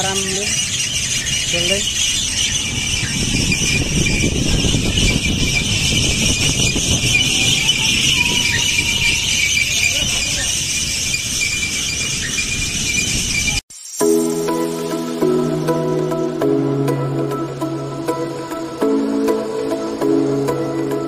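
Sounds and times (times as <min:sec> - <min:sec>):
wind rumbling on microphone: 0:00.0 - 0:13.6
shrill high-pitched squeal: 0:00.0 - 0:16.5.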